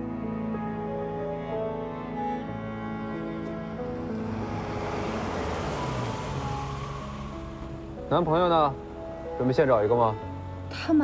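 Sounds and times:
background music sustained notes: 0.0s - 11.0s
car driving up: 2.2s - 10.5s.

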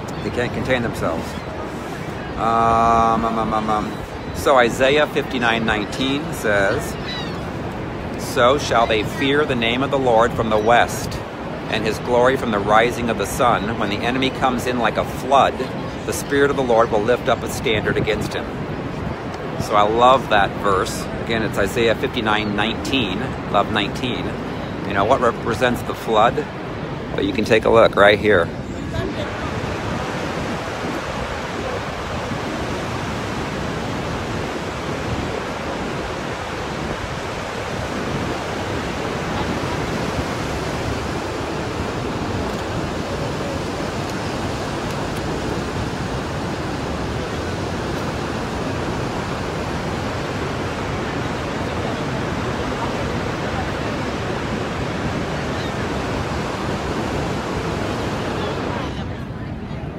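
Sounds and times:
waterfall rushing: 0.0s - 17.4s, 28.3s - 59.2s.

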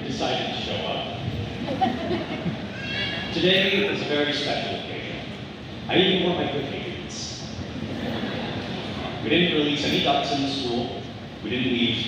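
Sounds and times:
audience laughter: 1.6s - 2.7s, 7.7s - 9.2s.

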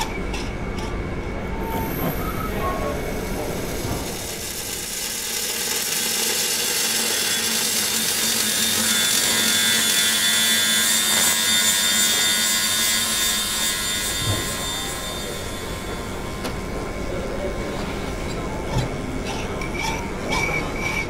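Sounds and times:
machinery hiss with high whine: 1.3s - 7.9s, 12.6s - 19.2s.

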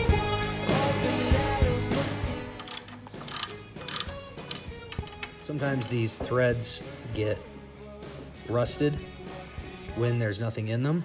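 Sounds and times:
background music: 0.0s - 11.0s
ratchet wrench clicking: 2.0s - 6.0s.

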